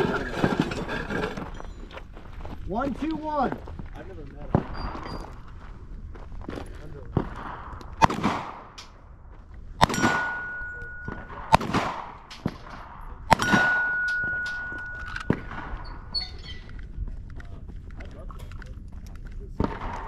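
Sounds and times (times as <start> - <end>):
gunshots echoing: 4.5 - 5.2, 7.1 - 9.0, 9.8 - 16.2, 19.6 - 20.0
metallic ringing tone: 9.9 - 11.3, 13.4 - 16.6.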